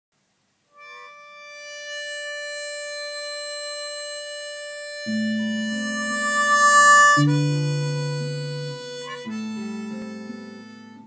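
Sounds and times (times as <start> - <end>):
harmonica long steady note: 0.7 - 11.0.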